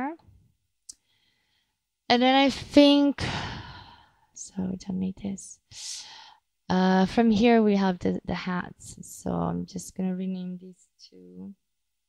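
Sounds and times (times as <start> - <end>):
spoken word: 11.1 - 11.5.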